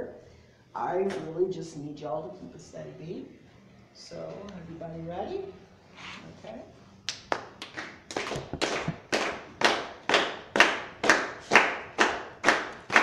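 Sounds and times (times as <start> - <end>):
audience clapping in unison: 7.1 - 13.0.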